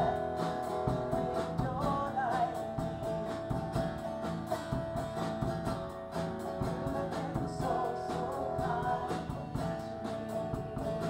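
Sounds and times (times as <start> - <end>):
acoustic guitar strumming: 0.0 - 11.0
live worship music: 0.0 - 11.0.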